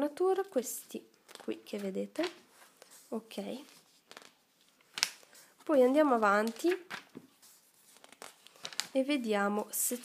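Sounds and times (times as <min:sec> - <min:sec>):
glossy paper pages turning: 0:01.2 - 0:09.0.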